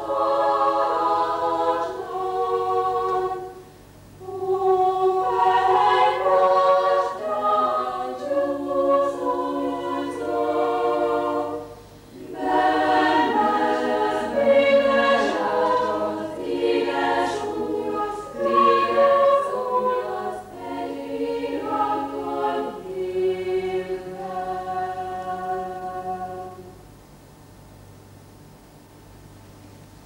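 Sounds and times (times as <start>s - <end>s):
choir singing unaccompanied: 0.0s - 26.8s.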